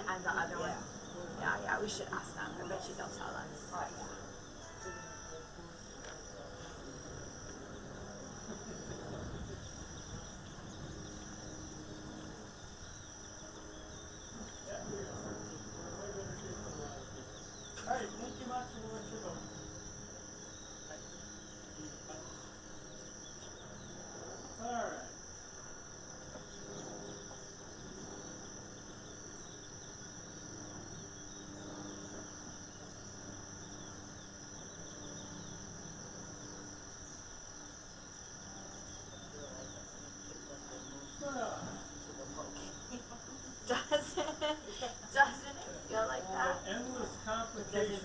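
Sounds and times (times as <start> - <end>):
voices: 0.0 - 25.3, 38.4 - 48.0
high-pitched insect chorus: 0.0 - 48.0.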